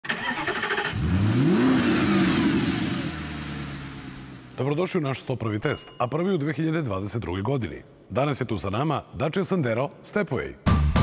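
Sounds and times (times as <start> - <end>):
car engine starting and idling: 0.0 - 4.6.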